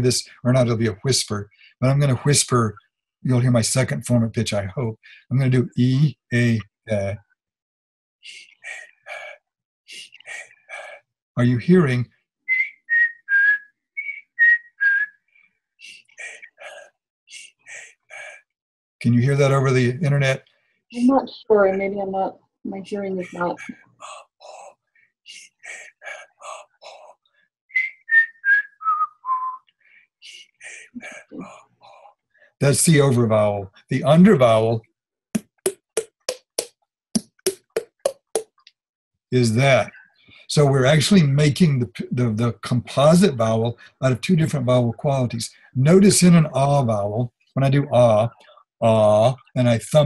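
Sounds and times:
man whispering vowels: 0.0s - 7.2s, 8.2s - 12.0s, 15.8s - 18.4s, 19.0s - 20.4s, 23.2s - 24.7s, 25.3s - 27.2s, 30.2s - 34.8s, 39.4s - 50.0s
breathy whispers: 8.2s - 11.9s, 15.8s - 18.4s, 23.3s - 27.2s, 30.0s - 34.0s
fingers flicking throat: 8.2s - 12.0s, 15.8s - 18.4s, 23.3s - 27.2s, 30.5s - 32.8s.

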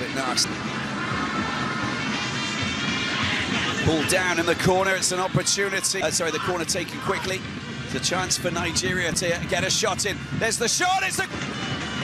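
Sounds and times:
stadium crowd din: 0.0s - 12.0s
commentator speaking: 3.7s - 11.3s.

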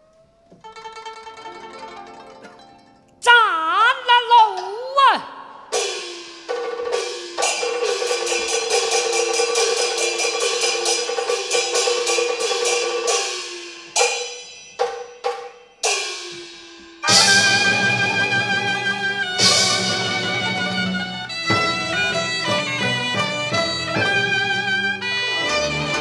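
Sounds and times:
string-led instrumental ensemble: 0.6s - 3.2s, 17.0s - 26.0s.

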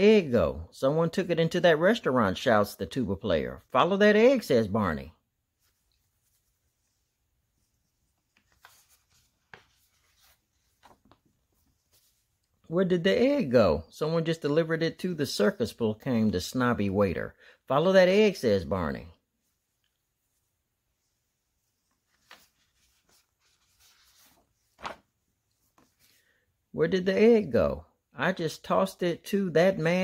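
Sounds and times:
paper page rustling: 5.6s - 12.5s, 21.6s - 26.2s
paper flick: 24.8s - 25.1s.

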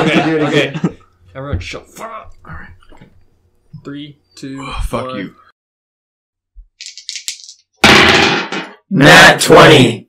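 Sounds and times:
shaker-like rattle: 6.8s - 7.6s.

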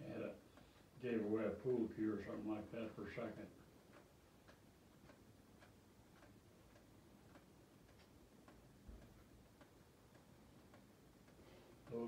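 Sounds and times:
faint regular ticking: 0.0s - 12.0s.

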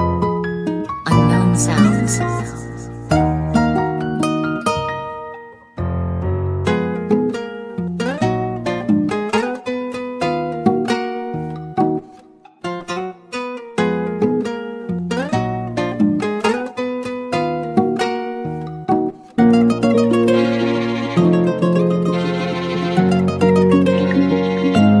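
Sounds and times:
plucked guitar notes: 0.0s - 25.0s
bass line: 1.1s - 3.9s.

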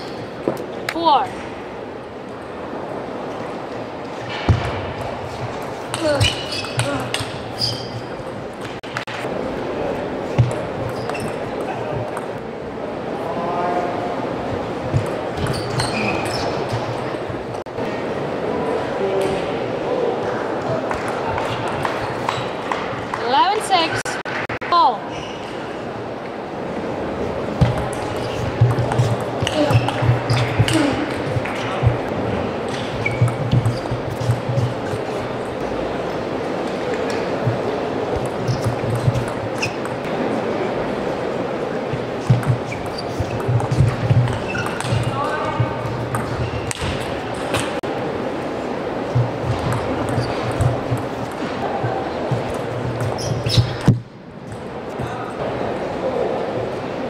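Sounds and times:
arena crowd noise: 0.0s - 57.0s.

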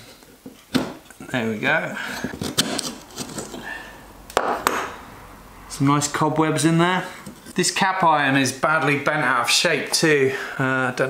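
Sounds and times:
metal scrape: 2.0s - 4.1s.

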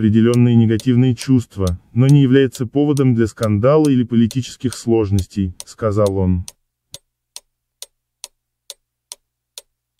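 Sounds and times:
sharp clock-like ticking: 0.0s - 9.7s.

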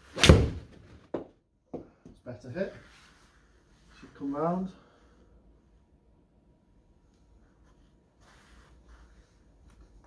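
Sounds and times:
ball hitting impact screen: 0.2s - 1.3s.

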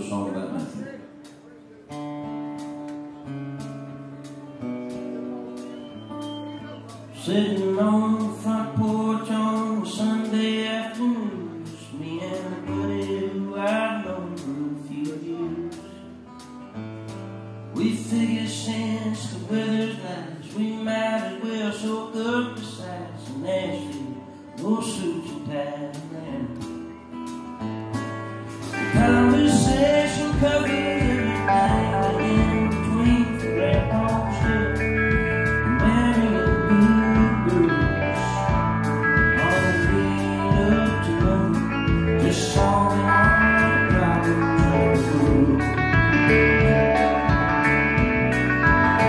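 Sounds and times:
strummed acoustic guitar: 0.0s - 49.0s
man singing: 6.6s - 16.1s, 17.7s - 27.0s, 28.7s - 47.4s
drum kit beat: 26.6s - 49.0s
electric bass: 27.7s - 49.0s.

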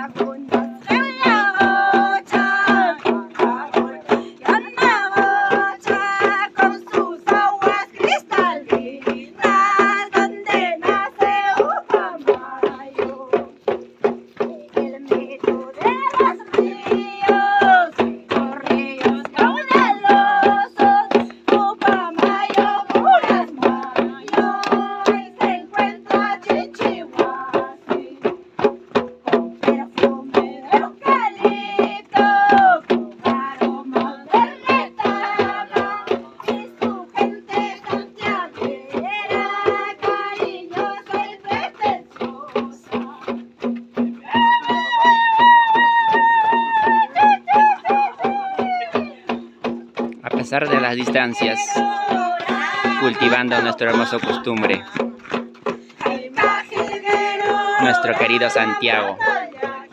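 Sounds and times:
high voices singing: 0.0s - 13.5s, 14.4s - 28.3s, 29.3s - 43.4s, 44.2s - 55.3s, 56.0s - 59.9s
hand drum beating: 0.0s - 59.9s.

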